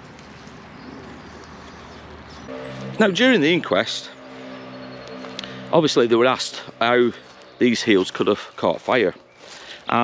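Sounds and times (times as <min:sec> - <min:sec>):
faint outdoor background noise: 0:00.0 - 0:10.0
low background music drone: 0:02.4 - 0:08.5.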